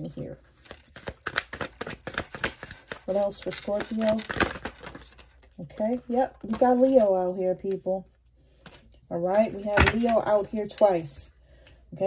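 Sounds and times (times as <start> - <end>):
cards being shuffled: 0.1 - 7.1.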